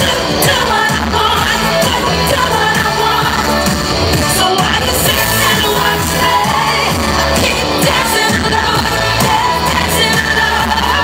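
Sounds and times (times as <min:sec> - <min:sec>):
amplified pop music with heavy bass: 0:00.0 - 0:11.0
woman singing into microphone: 0:00.0 - 0:11.0.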